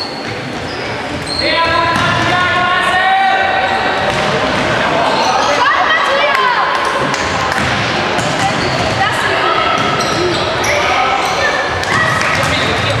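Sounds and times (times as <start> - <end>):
football bouncing on hall floor: 0.0 - 2.6, 4.0 - 4.8, 6.3 - 10.6, 11.4 - 13.0.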